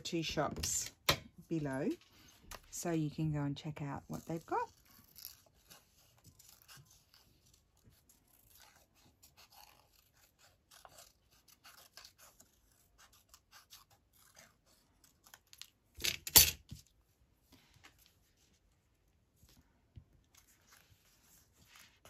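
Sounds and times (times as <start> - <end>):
scissors snipping paper: 4.0 - 16.3
scissors clattering on table: 16.0 - 16.7.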